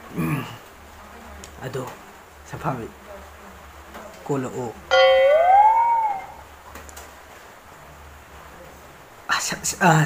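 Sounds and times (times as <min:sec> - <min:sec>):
man's falsetto whoop: 0:05.3 - 0:06.4.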